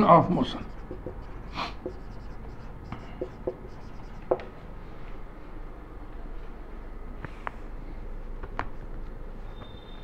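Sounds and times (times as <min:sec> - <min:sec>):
marker squeaking on a whiteboard: 0:00.0 - 0:04.5.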